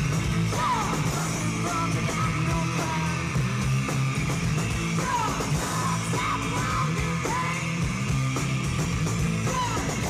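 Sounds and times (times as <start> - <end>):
bass guitar: 0.0 - 10.0
drums: 0.0 - 10.0
electric guitars: 0.0 - 10.0
person yelling vocals: 5.0 - 7.7.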